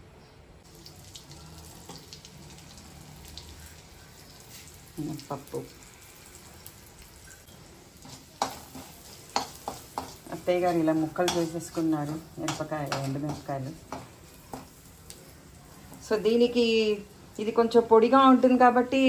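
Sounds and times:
hot oil sizzling in a wok: 0.6s - 19.0s.

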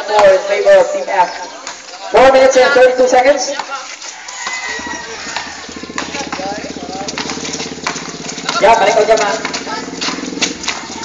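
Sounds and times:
small engine idling: 4.5s - 11.0s.

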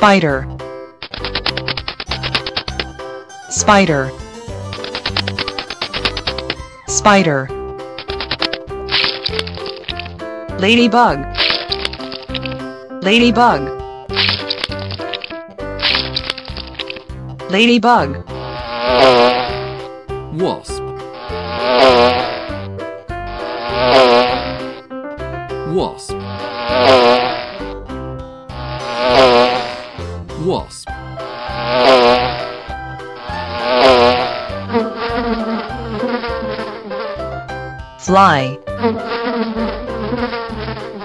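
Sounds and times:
background music: 0.0s - 41.0s
wasp buzzing: 1.0s - 17.1s, 18.2s - 20.0s, 21.0s - 24.9s, 26.1s - 27.8s, 28.5s - 30.1s, 31.0s - 41.0s.

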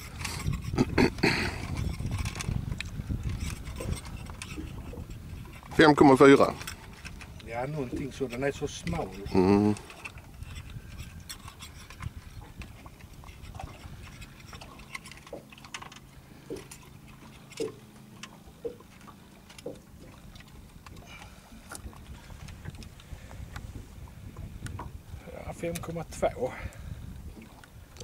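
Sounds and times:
waves lapping against boat hull: 0.0s - 28.0s.

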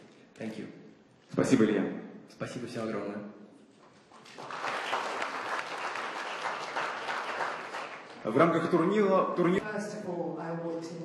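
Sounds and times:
audience applauding: 4.0s - 9.0s.

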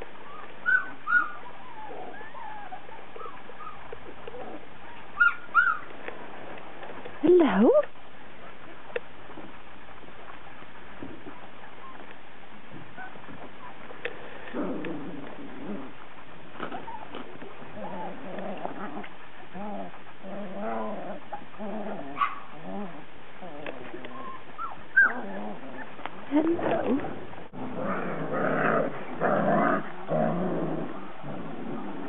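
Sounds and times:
puppies making short wavering calls: 0.1s - 5.9s, 23.7s - 27.1s.

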